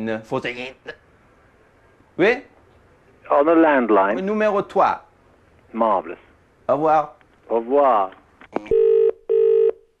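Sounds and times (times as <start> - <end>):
short buzzing phone tones: 8.6 - 9.8.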